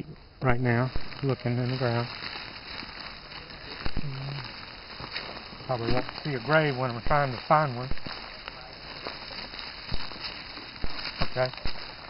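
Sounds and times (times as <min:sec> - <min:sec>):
wheels rolling over dry leaves: 0:00.0 - 0:12.0.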